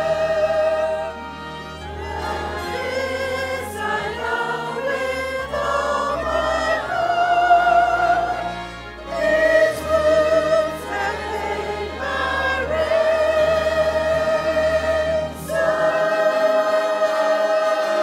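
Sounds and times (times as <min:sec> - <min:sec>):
choir singing a hymn: 0:00.0 - 0:18.0.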